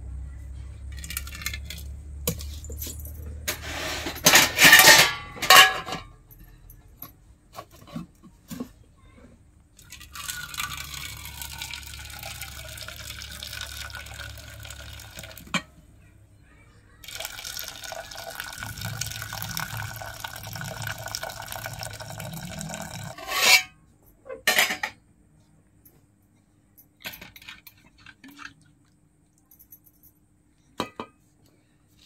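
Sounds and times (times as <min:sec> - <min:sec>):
metal pots clanking: 0:03.5 - 0:06.1, 0:17.1 - 0:23.7
water pouring into pot: 0:09.8 - 0:15.5, 0:17.0 - 0:23.2.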